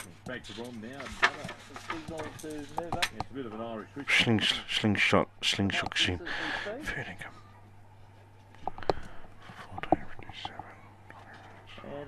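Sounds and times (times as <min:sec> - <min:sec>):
steady low hum: 0:00.0 - 0:12.0
person whispering: 0:09.6 - 0:11.8.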